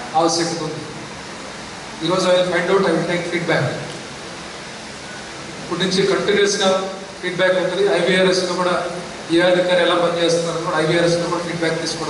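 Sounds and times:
background hiss: 0.0 - 12.0
man speaking: 0.1 - 1.0, 2.0 - 3.9, 5.7 - 12.0.

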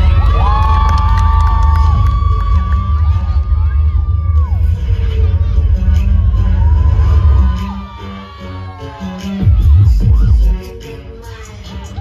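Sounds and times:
steady low rumble: 0.0 - 7.9
audience screaming and cheering: 0.0 - 12.0.

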